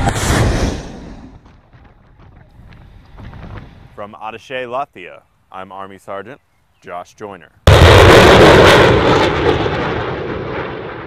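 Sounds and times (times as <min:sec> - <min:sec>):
rocket launch blast: 0:00.0 - 0:01.5, 0:07.7 - 0:11.0.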